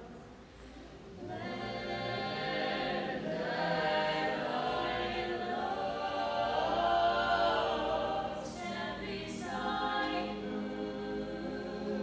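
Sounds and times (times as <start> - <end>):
a cappella choir singing chords: 0.0 - 12.0.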